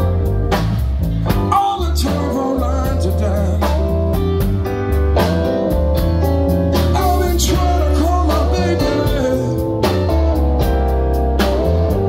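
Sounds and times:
deep bass line: 0.0 - 12.0
drum kit steady beat: 0.0 - 12.0
electric guitar: 0.0 - 12.0
man singing into a microphone: 1.4 - 4.0, 6.9 - 9.9.

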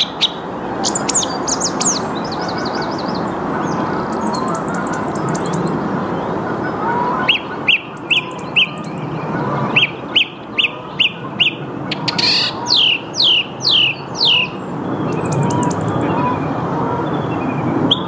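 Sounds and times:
song thrush singing: 0.0 - 6.3, 7.1 - 18.0.

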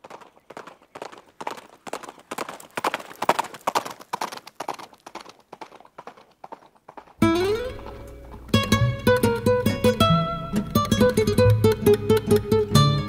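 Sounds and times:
clip-clopping footfalls on hard ground: 0.0 - 9.7.

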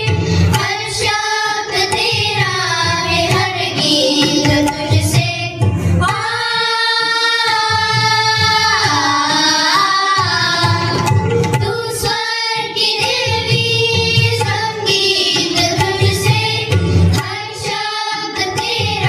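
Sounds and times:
children and women singing: 0.0 - 19.0
musical accompaniment: 0.0 - 19.0.

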